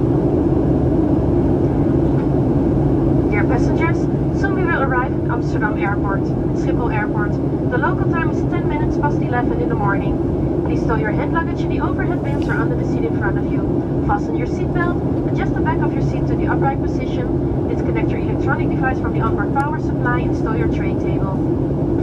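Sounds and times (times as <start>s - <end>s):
airplane cabin drone: 0.0s - 22.0s
voices: 3.3s - 21.4s.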